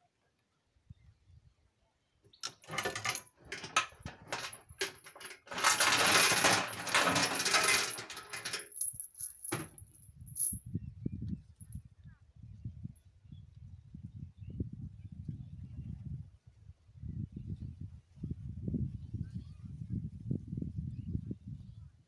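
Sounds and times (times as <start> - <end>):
metal chain rattling against steel drum: 2.4 - 10.6.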